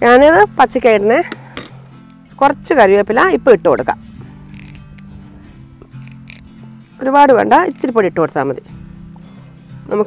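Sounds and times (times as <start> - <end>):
woman speaking: 0.0 - 1.3, 2.4 - 4.0, 7.0 - 8.7
soft background music: 0.0 - 10.0.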